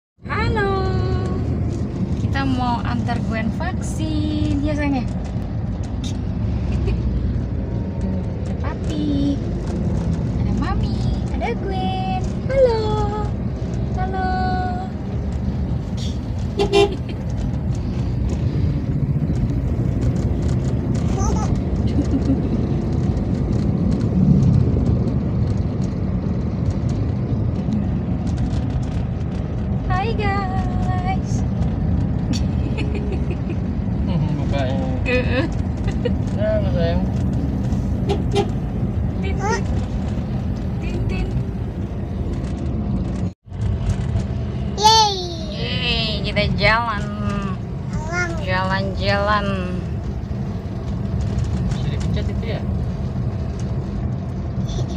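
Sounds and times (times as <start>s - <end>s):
car engine rumble: 0.2s - 54.9s
road noise inside car: 0.2s - 54.9s.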